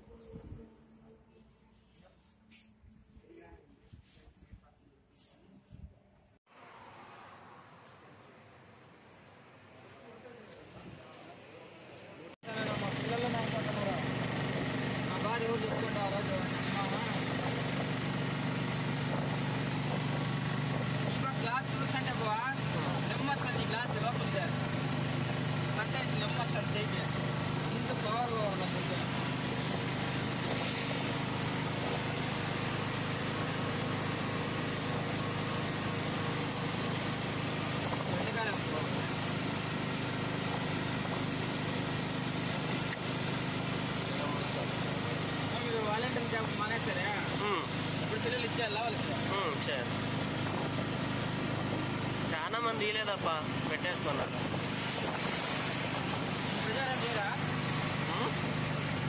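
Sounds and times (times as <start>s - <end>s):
wind: 0.0s - 59.0s
auto-rickshaw engine running: 12.5s - 59.0s
tyres on wet road: 12.6s - 59.0s.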